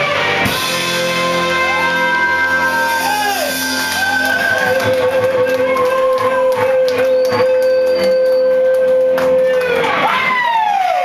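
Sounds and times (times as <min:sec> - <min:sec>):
rock band holding a note: 0:00.0 - 0:08.4
audience whooping: 0:01.0 - 0:11.0.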